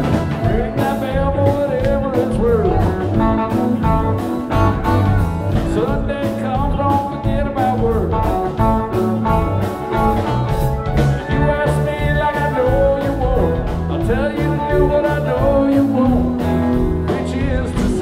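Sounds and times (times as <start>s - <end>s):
live rock band playing: 0.0s - 18.0s.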